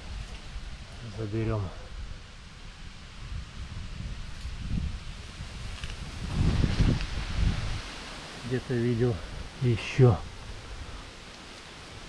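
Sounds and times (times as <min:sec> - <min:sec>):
rustling of dry leaves and twigs: 0:00.0 - 0:12.0
microphone handling rumble: 0:03.7 - 0:07.9.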